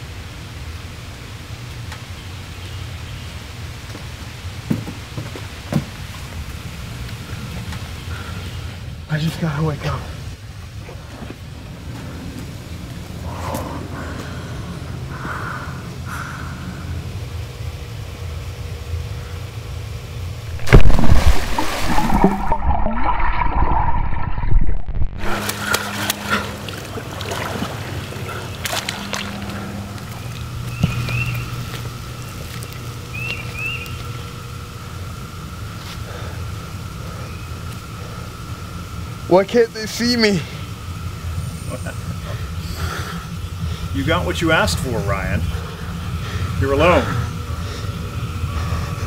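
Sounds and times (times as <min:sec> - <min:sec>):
footsteps on wooden stairs: 0:04.7 - 0:06.0
low rumble: 0:20.5 - 0:25.5
underwater churning and bubbling: 0:20.5 - 0:30.5
pool water splashing: 0:20.5 - 0:30.6
steady hiss: 0:29.9 - 0:49.0.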